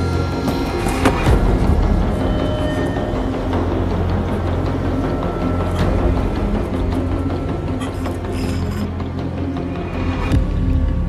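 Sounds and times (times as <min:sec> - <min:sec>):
dark droning soundtrack music: 0:00.0 - 0:11.0.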